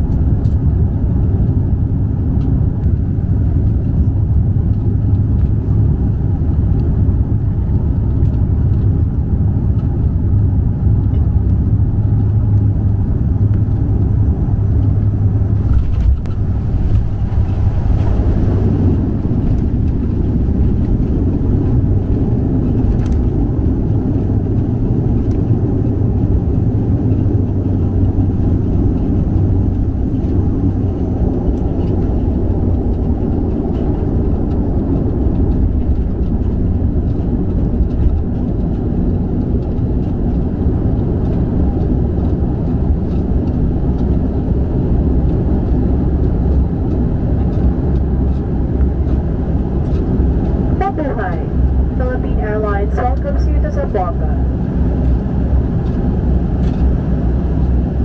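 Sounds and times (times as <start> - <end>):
airliner cabin engine drone: 0.0 - 58.0.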